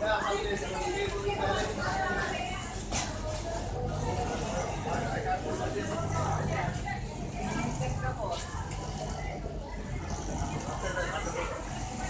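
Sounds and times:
machinery hum: 0:00.0 - 0:12.0
people talking: 0:00.0 - 0:12.0.

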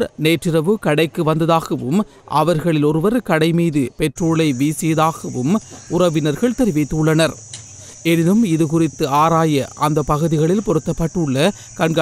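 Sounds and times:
narrator talking: 0:00.0 - 0:07.4, 0:08.0 - 0:12.0.

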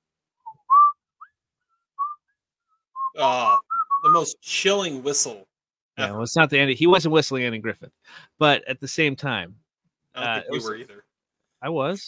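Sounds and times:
person whistling: 0:00.5 - 0:01.0, 0:02.0 - 0:02.2, 0:03.0 - 0:04.3.

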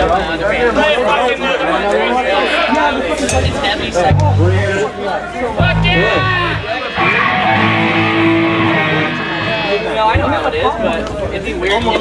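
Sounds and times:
electric guitar chord ringing: 0:03.4 - 0:04.7, 0:05.6 - 0:10.2
low bass note: 0:03.4 - 0:04.8, 0:05.6 - 0:10.0.

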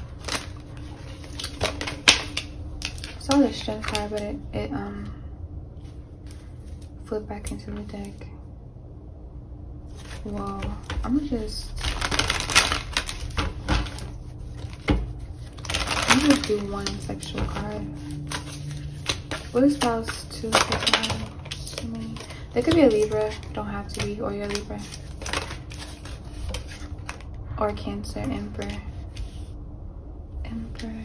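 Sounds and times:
cards snapping and rustling: 0:00.0 - 0:04.2, 0:10.0 - 0:27.3.

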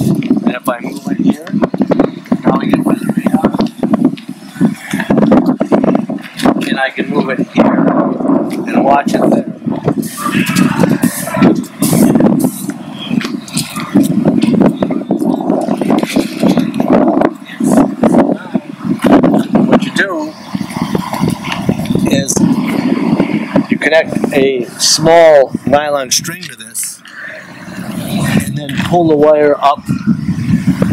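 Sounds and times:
muffled speech: 0:00.0 - 0:30.2.

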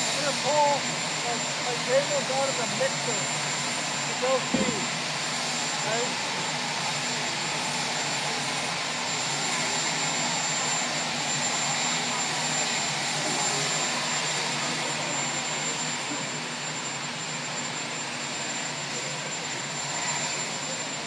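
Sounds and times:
aircraft turbine engines droning: 0:00.0 - 0:21.0.

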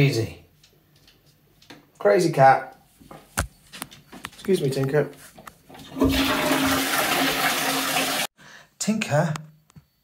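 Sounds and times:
toilet flushing: 0:05.8 - 0:08.3.

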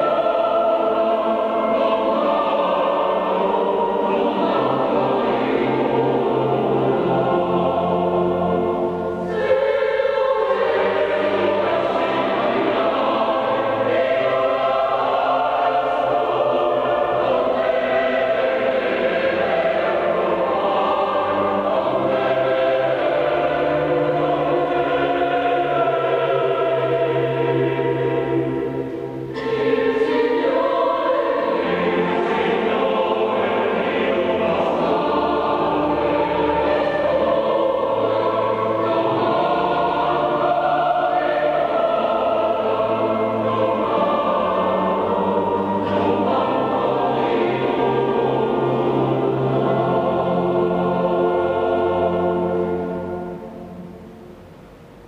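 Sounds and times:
pipe organ: 0:00.0 - 0:54.8
choir singing: 0:00.0 - 0:55.0.

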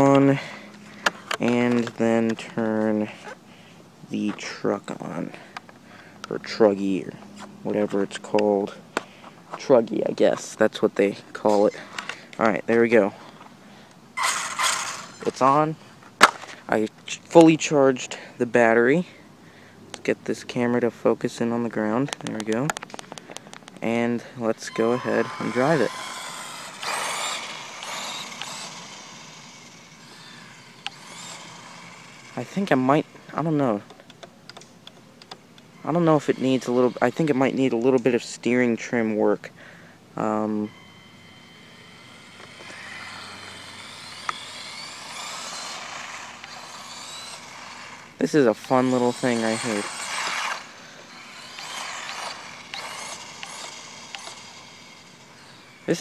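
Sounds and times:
electric motor whine: 0:14.2 - 0:15.6, 0:24.5 - 0:33.9, 0:35.2 - 0:38.2, 0:40.2 - 0:56.0.

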